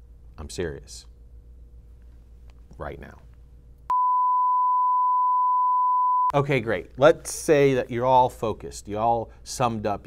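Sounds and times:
high steady test tone beep: 3.9s - 6.3s.

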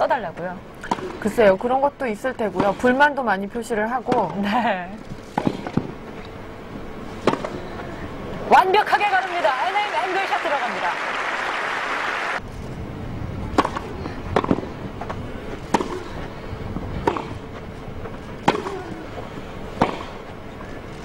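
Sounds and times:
racket striking tennis ball: 0.8s - 1.3s, 5.3s - 6.0s, 7.2s - 7.6s, 13.5s - 16.2s, 17.0s - 17.6s, 18.4s - 19.0s, 19.8s - 20.2s
crowd applauding: 8.9s - 12.4s.

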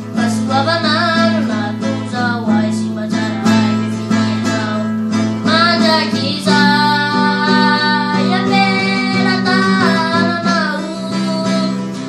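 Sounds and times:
acoustic guitar strumming: 0.0s - 12.0s
boy singing: 0.0s - 12.0s.

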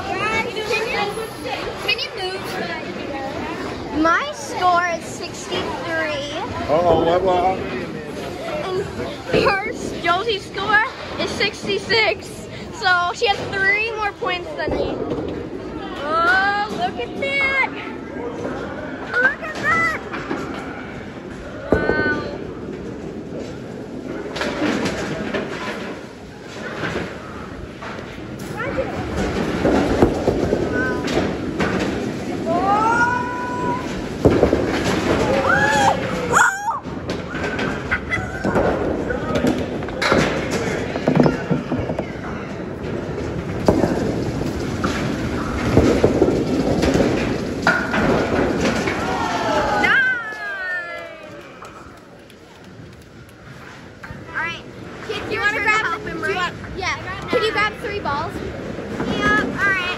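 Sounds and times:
voices: 0.0s - 15.1s
bowling balls rolling: 0.0s - 59.9s
balls knocking pins: 24.3s - 32.5s, 33.7s - 36.2s, 36.8s - 50.0s
children calling: 32.4s - 34.0s.

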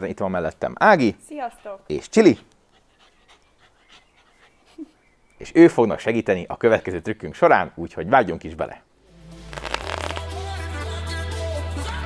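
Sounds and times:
small dog panting and sniffing: 1.3s - 5.0s.

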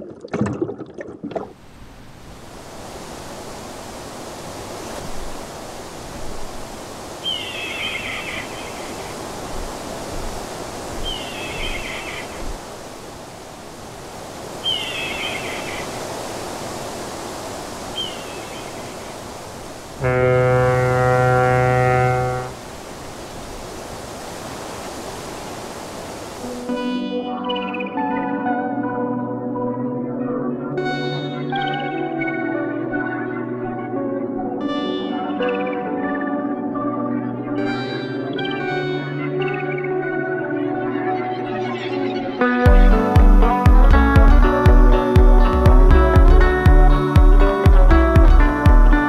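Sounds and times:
ocean surf: 1.5s - 27.1s, 37.6s - 49.0s
deep horn blast: 20.0s - 22.6s.

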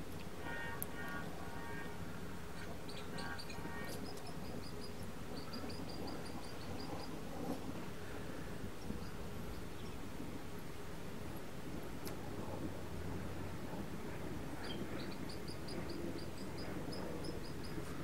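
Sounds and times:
steady low hum: 0.0s - 18.0s
small birds chirping: 2.6s - 7.2s.

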